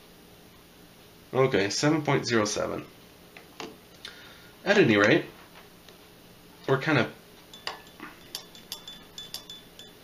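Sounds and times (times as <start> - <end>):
probe clinking against glass: 7.5 - 10.0.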